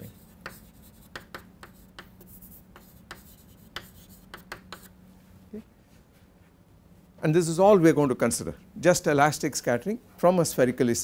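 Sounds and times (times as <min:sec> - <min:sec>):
chalk tapping and scratching: 0:00.0 - 0:05.0.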